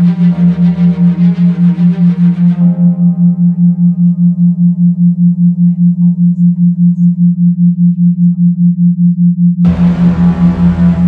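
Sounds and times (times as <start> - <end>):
ambient music pad: 0.0 - 7.5, 9.6 - 11.0
pulsing low sine hum: 0.0 - 11.0.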